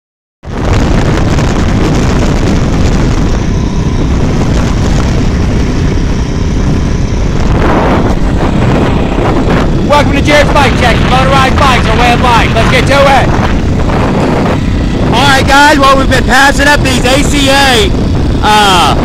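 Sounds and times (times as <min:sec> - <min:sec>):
wind rush on microphone: 0:00.4 - 0:19.0
small engine running: 0:01.8 - 0:19.0.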